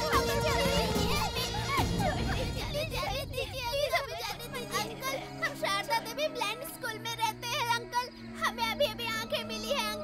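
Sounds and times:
children crying out: 0.0s - 10.0s
dramatic film score: 0.0s - 10.0s.

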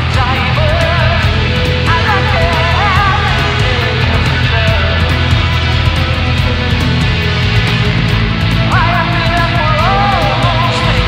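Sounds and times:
bass guitar: 0.0s - 11.0s
drums with cymbal beat: 0.0s - 11.0s
electric guitar: 0.0s - 11.0s.

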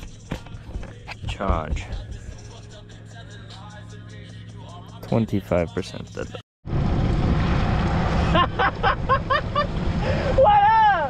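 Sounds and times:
man laughing: 8.2s - 10.4s.

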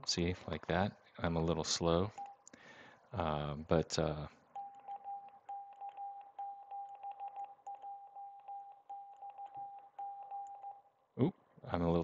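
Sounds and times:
morse code beeps: 4.6s - 10.9s.

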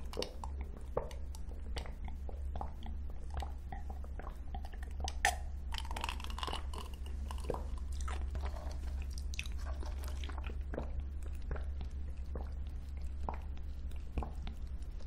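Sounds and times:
sipping and swallowing: 0.0s - 15.0s
steady low hum: 0.0s - 15.0s
wet mouth clicks: 0.0s - 15.0s.

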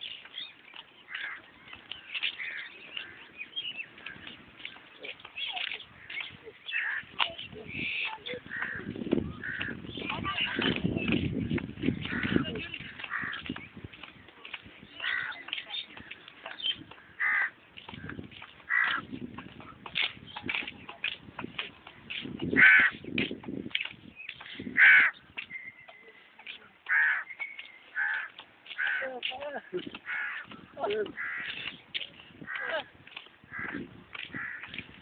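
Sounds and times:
small birds chirping: 0.0s - 35.0s
person's voice: 10.0s - 11.2s, 28.9s - 29.9s, 30.7s - 31.2s.

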